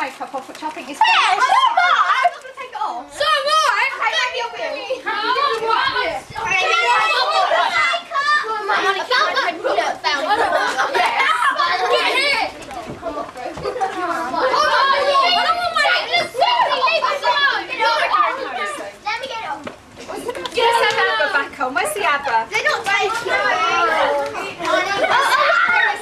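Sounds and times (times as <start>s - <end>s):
children chattering: 0.0s - 26.0s.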